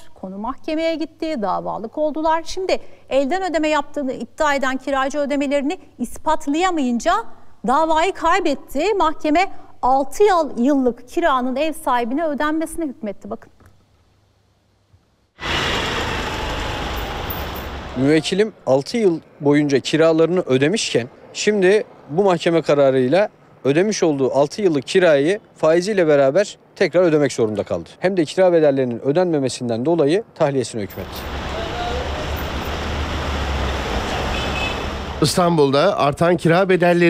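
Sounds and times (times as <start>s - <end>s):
rushing outdoor background noise: 0.0s - 37.0s
urban noise: 0.0s - 37.0s
low rumble of traffic: 15.3s - 37.0s.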